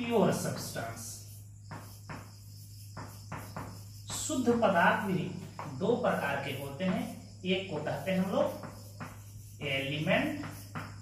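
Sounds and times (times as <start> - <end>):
marker writing on whiteboard: 0.0 - 11.0
steady low hum: 0.0 - 11.0.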